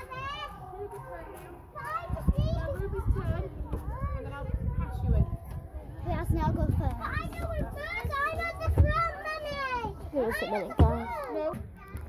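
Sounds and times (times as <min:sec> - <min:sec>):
children calling and shouting: 0:00.0 - 0:12.0.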